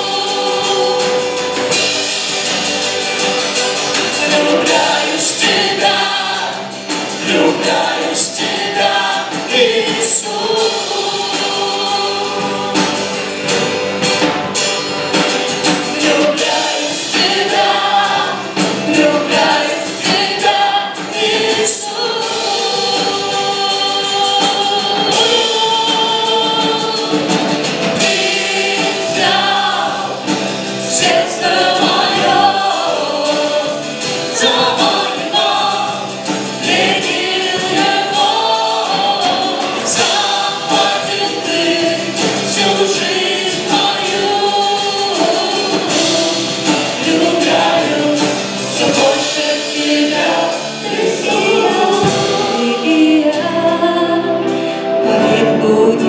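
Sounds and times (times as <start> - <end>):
woman and men singing: 0.0 - 3.2, 3.8 - 14.2, 15.1 - 56.0
worship band playing: 0.0 - 56.0.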